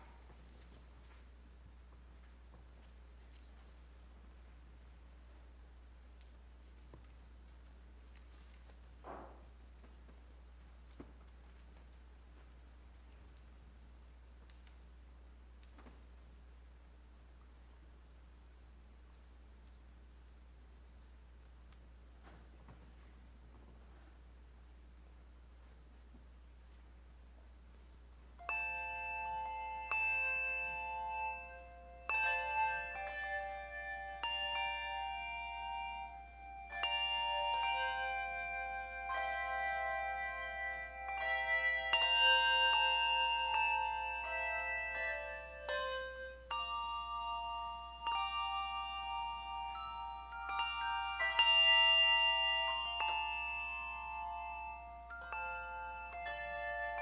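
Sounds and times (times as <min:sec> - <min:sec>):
handbell choir playing: 0:28.4 - 0:57.0.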